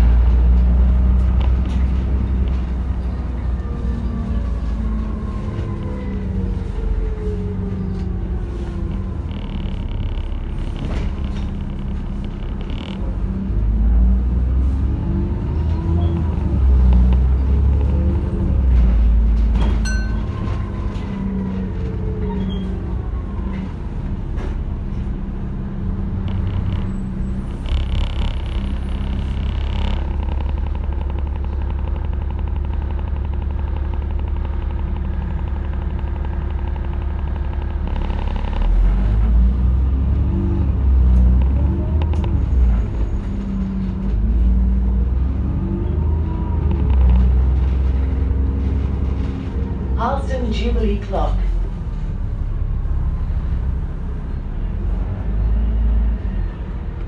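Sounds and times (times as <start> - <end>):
bus engine droning: 0.0 - 57.0.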